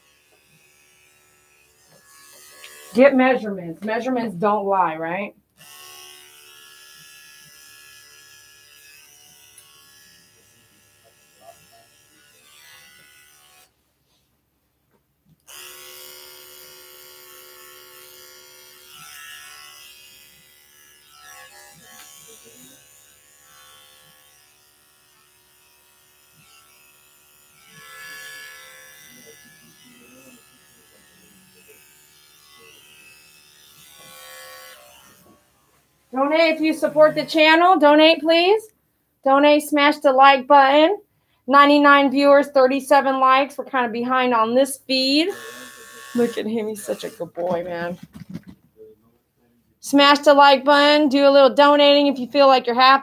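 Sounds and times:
electric clippers buzzing: 0.0 - 4.3, 5.6 - 13.8, 15.4 - 38.6, 44.0 - 48.6, 50.1 - 53.0.

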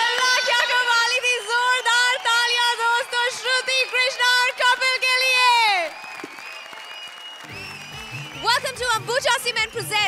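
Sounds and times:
studio audience applause: 0.0 - 10.0.

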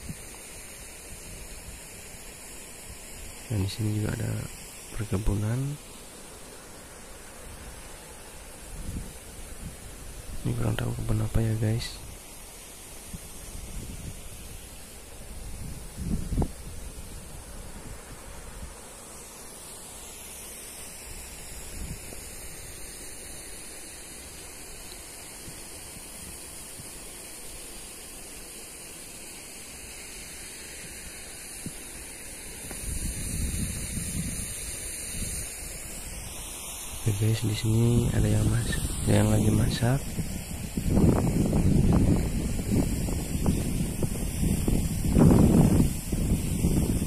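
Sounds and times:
steady high-pitched hiss: 0.0 - 47.0
low buffeting wind gusts: 8.6 - 12.2, 13.1 - 18.8, 32.7 - 36.2, 37.0 - 47.0
wind on microphone: 8.7 - 12.2, 13.0 - 14.6, 15.2 - 18.8, 32.6 - 35.6, 37.0 - 47.0.

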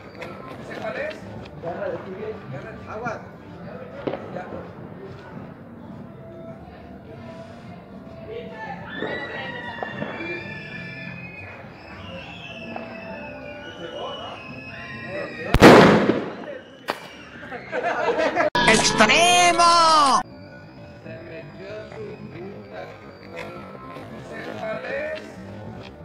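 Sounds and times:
firecracker blast: 15.5 - 17.3.

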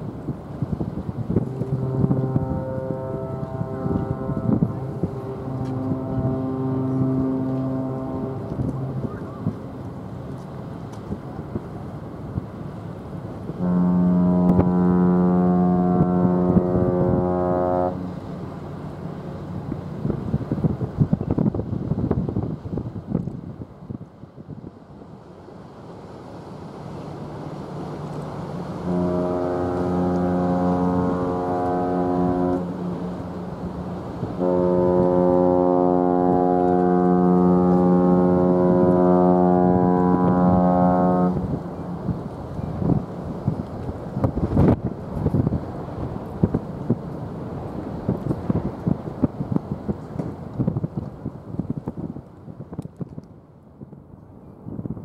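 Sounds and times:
ship horn blasts: 0.0 - 24.0, 26.6 - 52.2.

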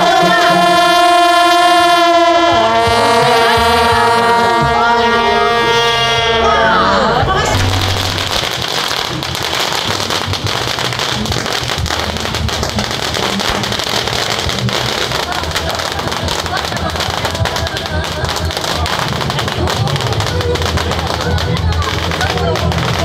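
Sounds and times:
crowd voices: 0.0 - 23.0
firecrackers crackling: 0.0 - 23.0.

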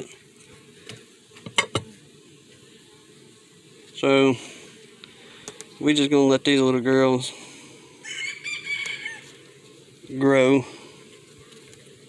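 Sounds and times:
rooster crowing faintly: 8.0 - 9.4.

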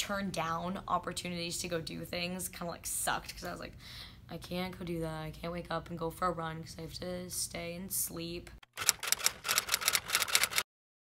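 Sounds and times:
typewriter keys clacking: 8.7 - 10.6.

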